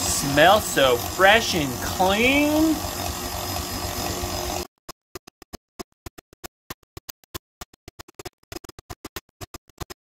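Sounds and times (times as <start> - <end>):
stand mixer motor hum: 0.0 - 4.7.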